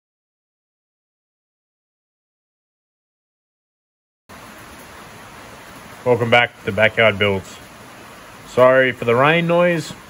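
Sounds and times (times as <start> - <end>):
heavy rain falling: 4.3 - 10.0.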